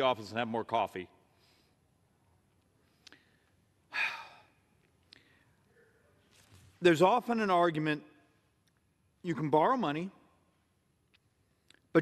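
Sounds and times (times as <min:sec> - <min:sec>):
man sighing: 0:03.9 - 0:04.6.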